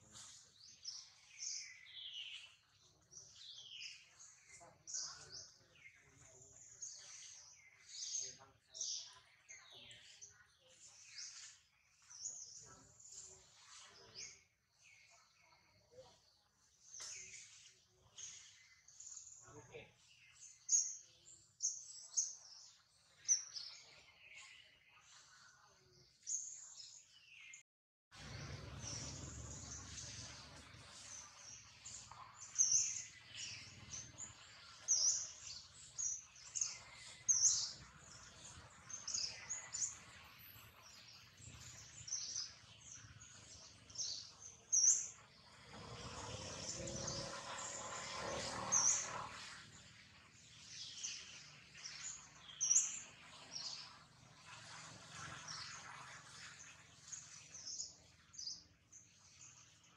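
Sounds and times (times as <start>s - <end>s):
birds chirping: 0.0s - 27.6s, 28.2s - 59.9s.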